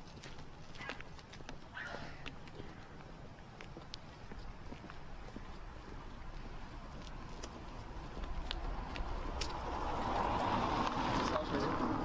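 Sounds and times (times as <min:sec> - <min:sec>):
heels clicking on concrete: 0:00.0 - 0:11.0.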